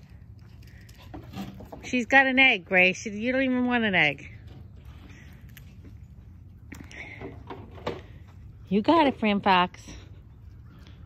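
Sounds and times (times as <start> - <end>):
faint background rumble: 0.0 - 11.0
woman speaking: 1.9 - 4.3, 8.7 - 10.0.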